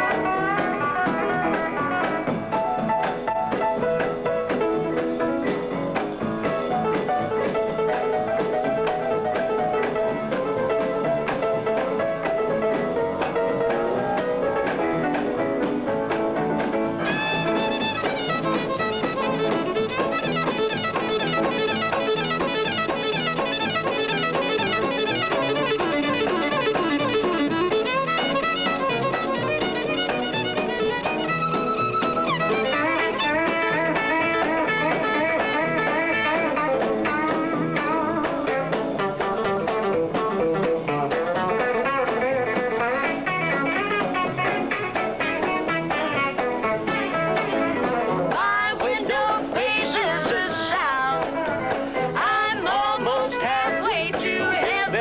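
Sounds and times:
country band with drums: 0:00.0 - 0:55.0
fast lead electric guitar: 0:00.0 - 0:55.0
fast fiddle playing: 0:06.4 - 0:55.0.

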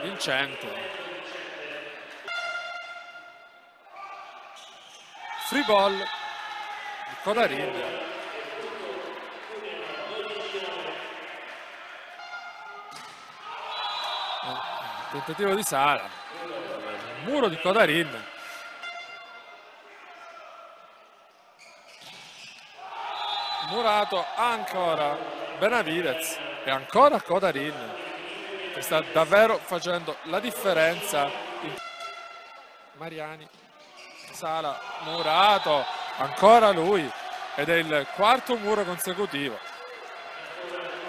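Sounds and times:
faint crowd noise: 0:00.0 - 0:41.0
quieter horn-like tone: 0:02.2 - 0:03.7.

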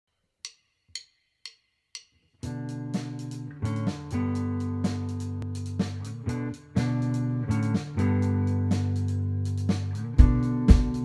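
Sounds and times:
rock band playing: 0:02.4 - 0:11.0.

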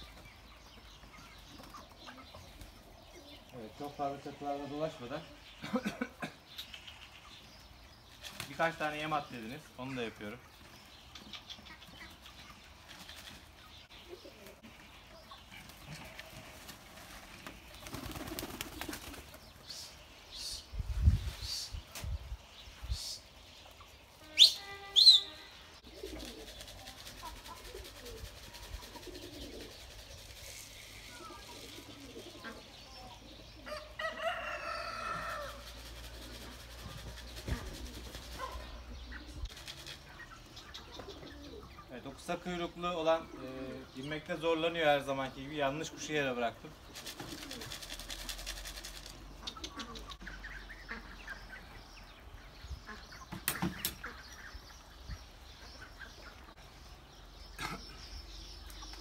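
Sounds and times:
pigeon wings flapping: 0:16.5 - 0:19.3, 0:47.0 - 0:49.1
short bird call: 0:24.2 - 0:25.6.

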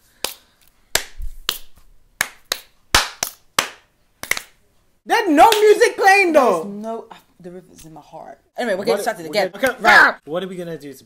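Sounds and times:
fingers snapping: 0:00.2 - 0:04.6.

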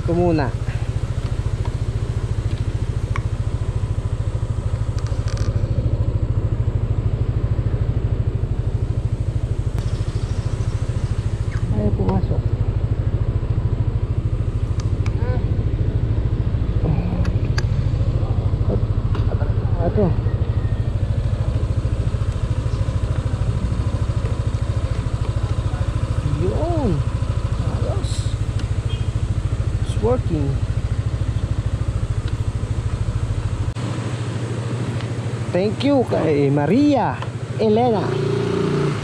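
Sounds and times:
scooter engine idling: 0:00.0 - 0:39.0.

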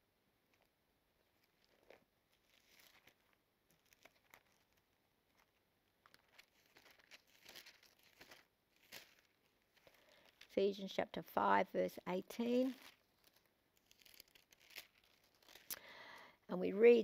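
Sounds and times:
thin pages rustling: 0:00.5 - 0:10.6, 0:12.4 - 0:15.8.

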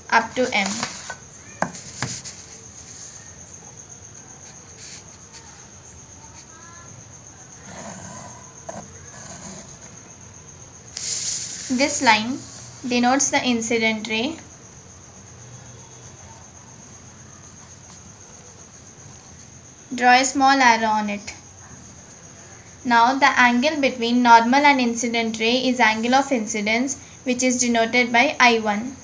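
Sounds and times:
pencil scratching along ruler: 0:07.6 - 0:10.0.

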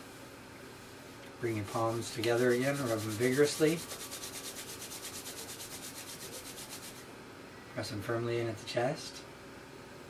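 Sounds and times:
palms rubbing together: 0:01.7 - 0:07.1.

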